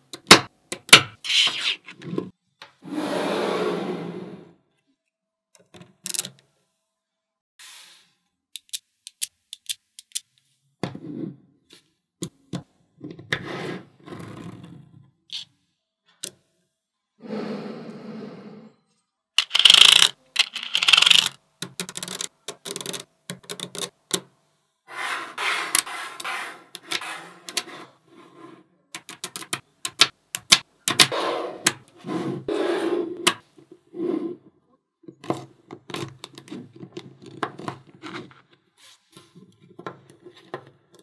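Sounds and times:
magnet balls rasping together: 19.4s - 24.0s, 24.9s - 28.0s
magnetic balls clicking: 19.4s - 24.3s, 28.9s - 31.1s.

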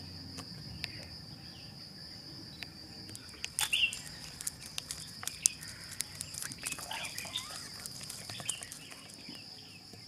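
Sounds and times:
high insect trill: 0.0s - 10.0s
sharp clicks: 3.1s - 9.2s
bird warbling calls: 3.2s - 9.4s.

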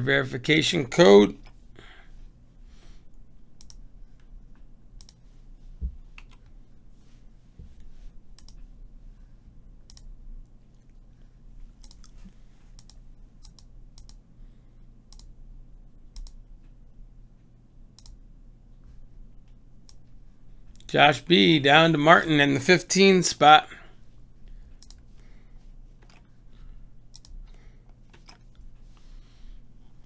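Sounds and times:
computer mouse clicking: 3.6s - 4.3s, 5.0s - 5.2s, 6.1s - 6.5s, 8.4s - 8.7s, 9.8s - 10.1s, 11.8s - 14.2s, 15.1s - 15.3s, 16.1s - 16.4s, 18.0s - 18.2s, 24.8s - 25.1s, 27.1s - 28.8s.

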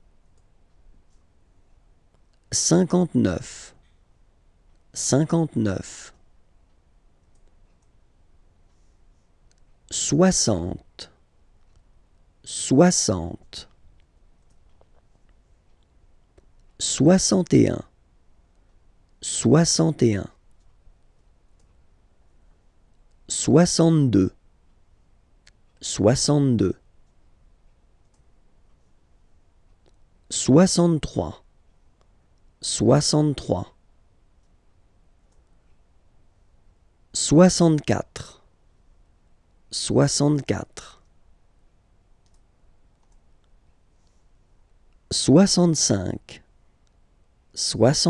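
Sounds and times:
faint mouse clicks: 6.7s - 8.0s, 28.0s - 28.9s, 42.2s - 44.2s.

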